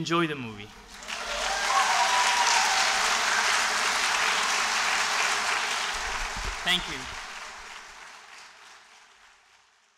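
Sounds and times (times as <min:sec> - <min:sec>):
audience applause: 0:00.8 - 0:09.9.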